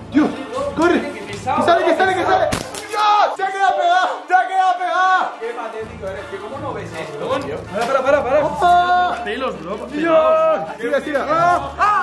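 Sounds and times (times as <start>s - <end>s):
young men yelling: 1.7s - 5.4s, 8.4s - 12.0s.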